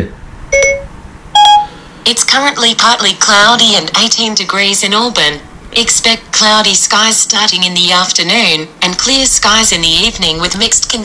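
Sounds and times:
short electronic beeps: 0:00.5 - 0:01.7.

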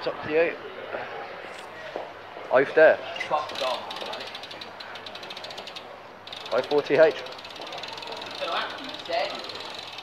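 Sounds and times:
bike freewheel clicking: 0:03.3 - 0:10.0.

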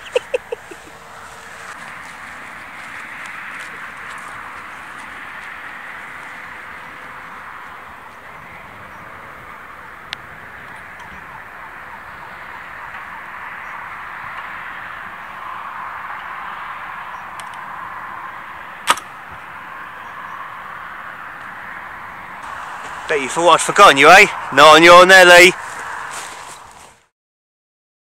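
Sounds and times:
rushing outdoor background: 0:00.0 - 0:27.1.

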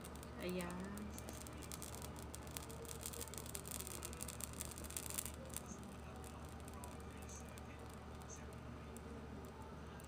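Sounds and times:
leaf crackling in flame: 0:00.0 - 0:10.0
low steady hum: 0:00.0 - 0:10.0.

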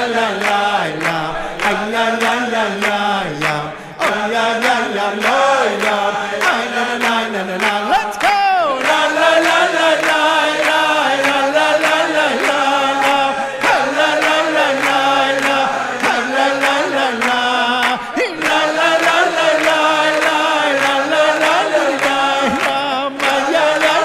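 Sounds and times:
man singing lead: 0:06.4 - 0:09.0, 0:16.1 - 0:24.0.

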